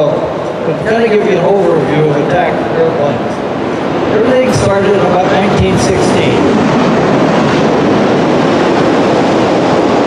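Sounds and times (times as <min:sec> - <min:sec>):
loud rushing noise: 0:00.0 - 0:10.0.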